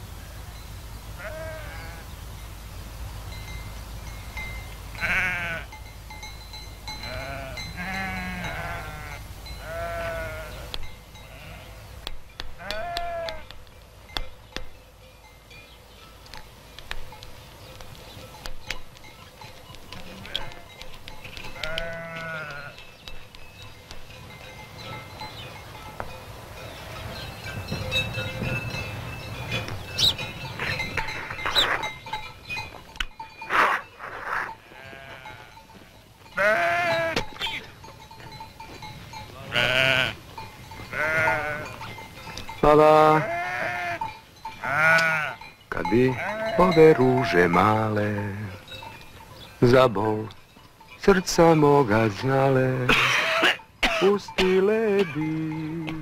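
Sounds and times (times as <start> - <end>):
animals bleating: 1.2 - 2.1, 4.9 - 5.8, 7.0 - 12.0, 12.6 - 13.6, 19.9 - 20.8, 21.4 - 22.9, 33.5 - 37.8, 39.3 - 42.0, 42.7 - 48.7.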